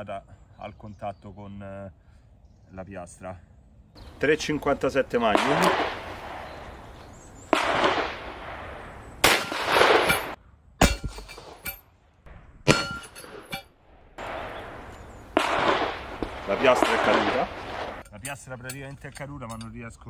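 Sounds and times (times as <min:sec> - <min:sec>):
revolver shots with echo: 0:07.5 - 0:10.4, 0:14.2 - 0:18.0
bullet hitting steel plate clang: 0:09.2 - 0:11.9, 0:12.6 - 0:13.8.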